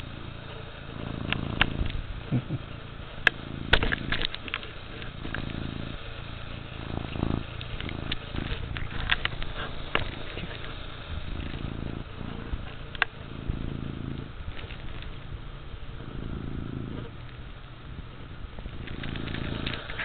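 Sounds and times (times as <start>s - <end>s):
cat purring: 0.0s - 20.0s.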